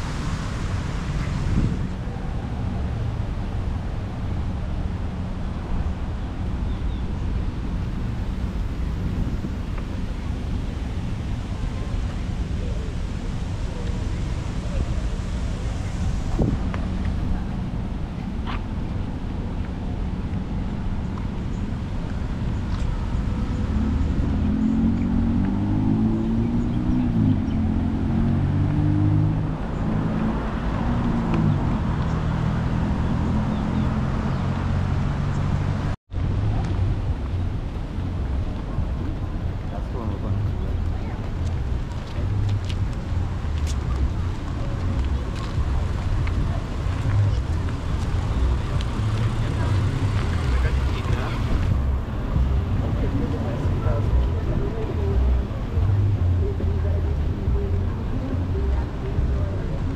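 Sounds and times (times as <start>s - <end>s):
steady low rumble: 0.0s - 33.2s, 36.1s - 59.9s
road traffic going by: 0.0s - 59.9s
vehicle engine accelerating: 7.8s - 59.9s.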